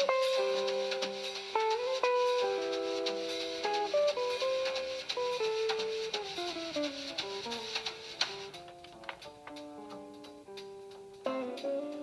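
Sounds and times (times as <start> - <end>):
electric guitars playing jazz chords: 0.0 - 12.0
light drum kit ticks: 0.0 - 12.0.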